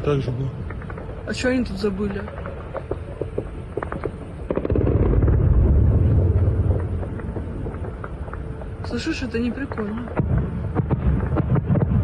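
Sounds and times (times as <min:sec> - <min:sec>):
low rolling rumble: 0:00.0 - 0:12.0.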